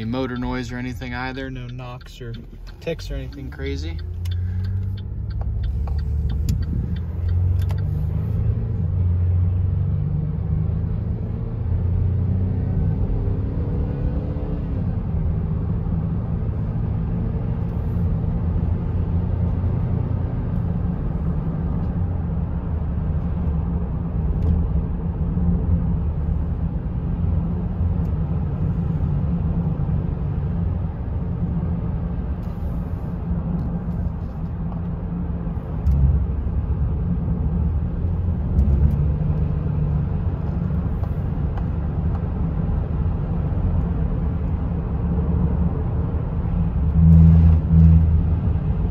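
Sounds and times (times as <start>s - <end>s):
car engine accelerating: 0.0s - 23.8s
road and tyre rumble: 0.0s - 48.9s.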